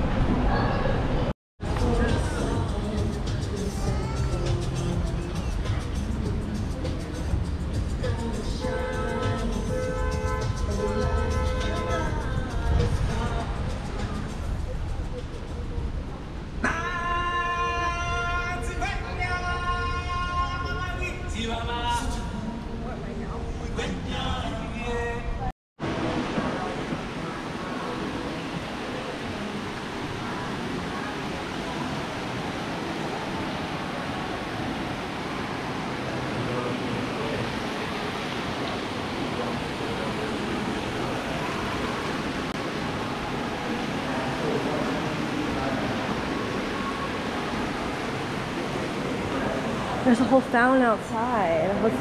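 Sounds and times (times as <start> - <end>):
distant indistinct voices: 0.0 - 52.0
rushing background noise: 0.0 - 52.0.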